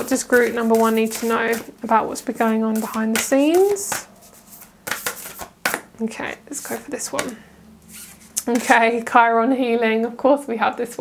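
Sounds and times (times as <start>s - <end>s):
cards being shuffled: 0.1s - 1.8s, 2.7s - 5.9s.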